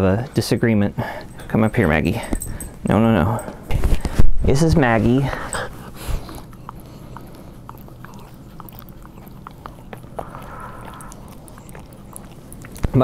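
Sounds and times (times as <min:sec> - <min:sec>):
puppy licking face: 0:04.8 - 0:13.0.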